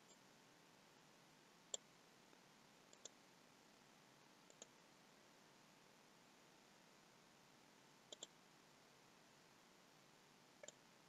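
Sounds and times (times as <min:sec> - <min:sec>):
computer mouse double click: 0:08.1 - 0:08.3.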